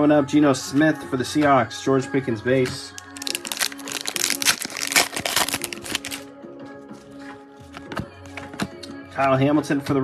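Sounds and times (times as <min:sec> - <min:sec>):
background music: 0:00.0 - 0:10.0
foil wrapper crinkling: 0:03.0 - 0:06.2.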